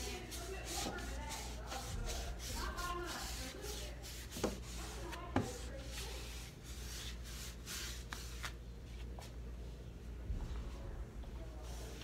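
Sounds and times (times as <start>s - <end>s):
hand rubbing painted wood: 0.0s - 8.6s.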